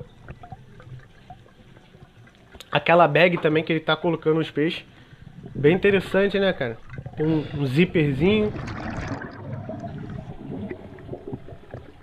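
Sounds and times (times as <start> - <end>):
air bubbles gurgling underwater: 5.3 - 12.0.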